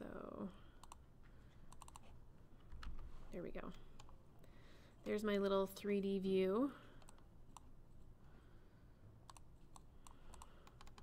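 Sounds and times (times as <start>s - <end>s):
computer mouse and keyboard clicks: 0.8s - 1.0s, 1.7s - 3.1s, 3.7s - 4.2s, 7.0s - 7.7s, 9.2s - 11.0s.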